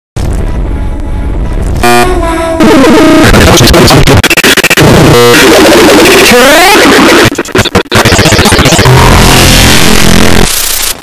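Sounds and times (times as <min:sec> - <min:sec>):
sound effects: 0:00.2 - 0:11.0
short buzzing tone: 0:01.8 - 0:03.2
distorted synthesized music: 0:01.8 - 0:11.0.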